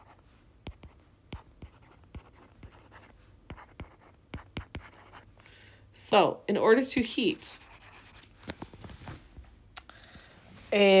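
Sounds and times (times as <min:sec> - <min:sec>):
stylus tapping tablet screen: 0:00.6 - 0:05.2.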